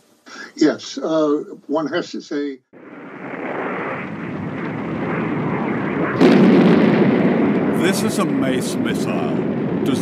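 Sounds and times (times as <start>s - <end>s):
rocket launch roar: 2.8s - 10.0s.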